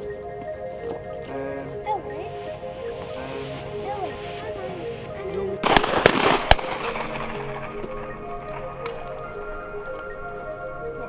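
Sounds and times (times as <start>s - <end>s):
background music: 0.0s - 11.0s
shotgun reports: 5.6s - 7.9s.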